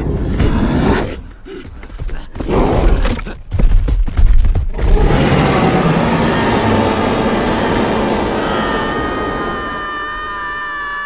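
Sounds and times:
dinosaurs roaring: 4.8s - 10.5s.

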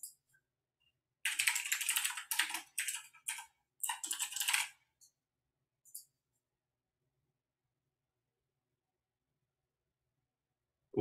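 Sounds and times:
typing on computer keyboard: 1.2s - 4.8s.

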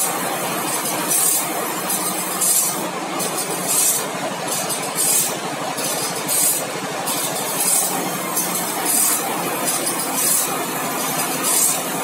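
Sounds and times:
high grinding hiss: 0.0s - 12.0s
motor hum and clatter: 0.0s - 12.0s.

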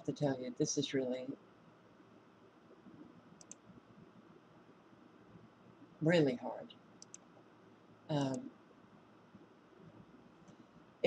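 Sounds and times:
computer mouse clicks: 2.9s - 3.7s, 7.0s - 7.4s.

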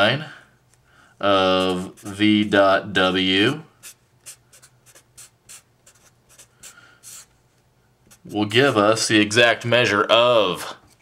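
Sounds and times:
marker scratching on paper: 1.4s - 2.6s, 3.8s - 7.3s, 8.1s - 9.0s.

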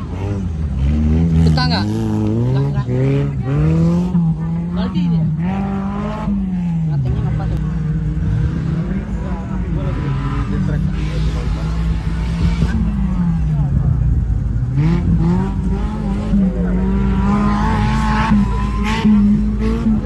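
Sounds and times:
racing engine revving hard: 0.0s - 20.0s.

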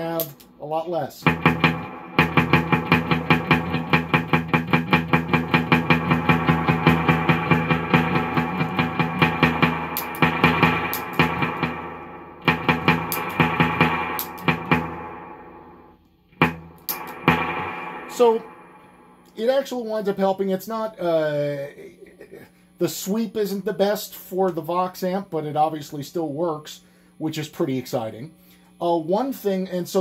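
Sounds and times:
electric guitar with spring reverb: 1.2s - 19.8s.

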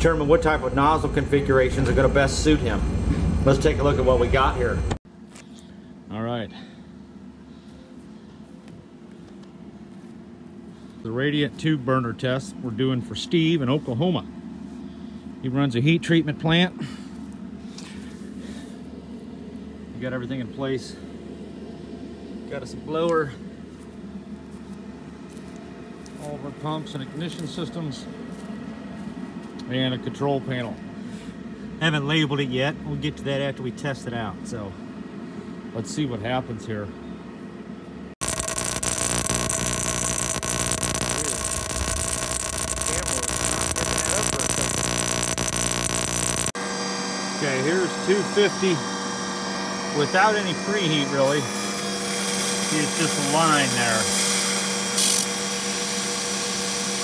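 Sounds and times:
low mechanical hum: 0.0s - 57.0s
electric spark buzzing and crackling: 38.2s - 46.6s.

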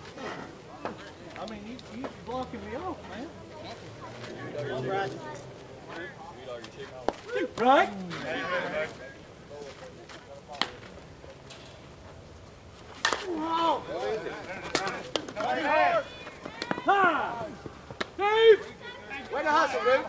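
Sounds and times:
bat cracking ball: 13.0s - 13.4s
players shouting: 13.1s - 20.0s.

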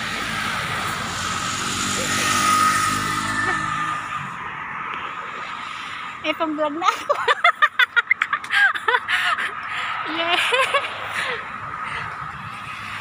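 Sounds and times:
bus driving past: 0.0s - 6.3s.

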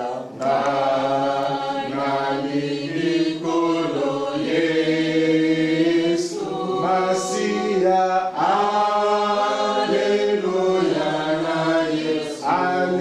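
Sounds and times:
congregation singing slowly: 0.0s - 13.0s.

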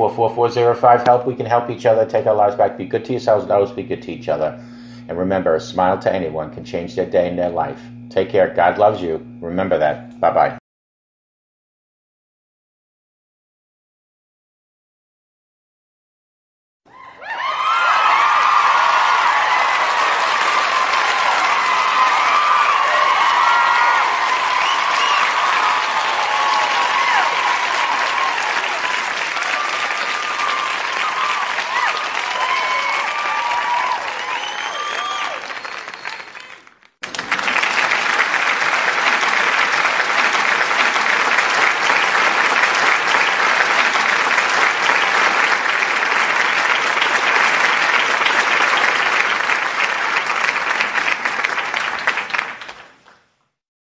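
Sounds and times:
crowd cheering: 16.9s - 53.0s
crowd applause: 16.9s - 53.2s.

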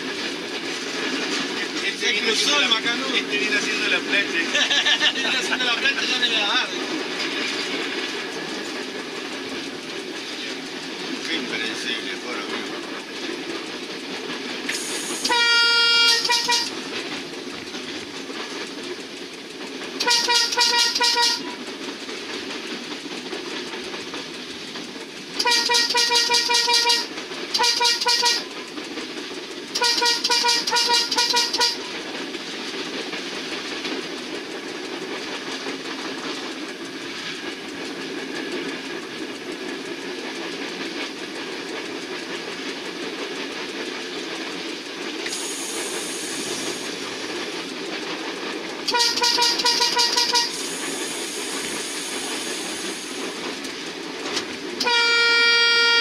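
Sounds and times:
train running on rails: 0.0s - 56.0s
train horn blasts: 15.2s - 16.8s, 20.0s - 21.6s, 25.4s - 28.5s, 29.8s - 31.8s, 48.9s - 50.6s, 54.8s - 56.0s.

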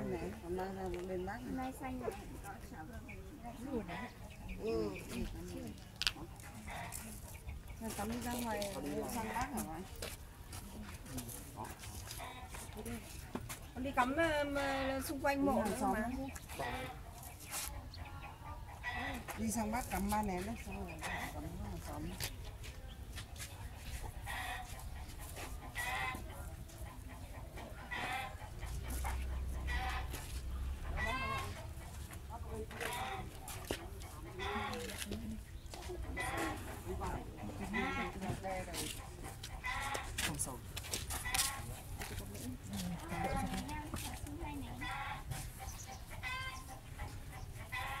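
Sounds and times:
chickens clucking: 0.0s - 48.0s
indistinct voices talking: 0.0s - 48.0s.

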